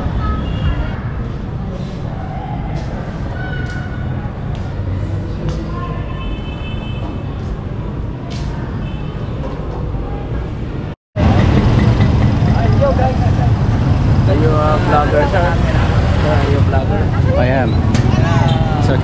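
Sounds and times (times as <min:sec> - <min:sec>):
motorcycles running: 0:11.2 - 0:19.0
people's voices: 0:12.4 - 0:19.0.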